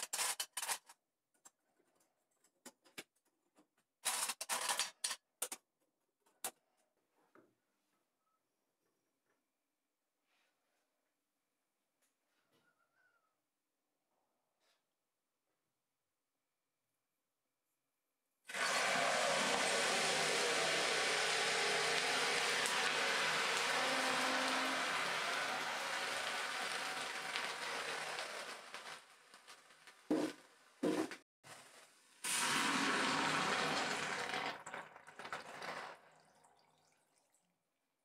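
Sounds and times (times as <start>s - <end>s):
molten metal sizzling in water: 18.5s - 30.8s, 32.2s - 36.3s.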